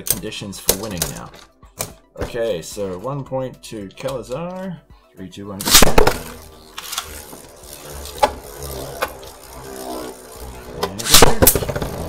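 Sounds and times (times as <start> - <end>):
spinning top launch rip: 5.6 - 12.0
spinning tops clicking together: 5.6 - 12.0
spinning tops humming: 5.6 - 12.0.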